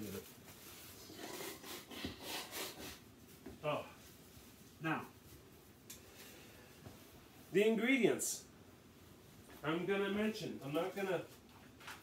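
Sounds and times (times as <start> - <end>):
rustling of person moving: 0.0 - 12.0.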